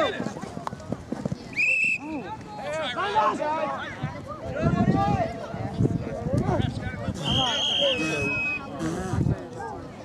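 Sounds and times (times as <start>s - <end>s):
referee's whistle blast: 7.2s - 8.7s.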